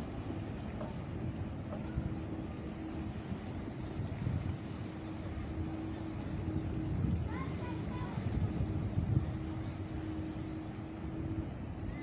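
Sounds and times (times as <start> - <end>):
faint steady hum: 0.0 - 12.0
wind buffeting microphone: 0.0 - 12.0.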